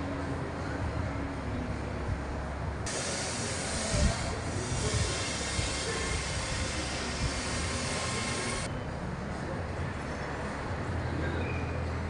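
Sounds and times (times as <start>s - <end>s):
steady hiss: 2.9s - 8.7s.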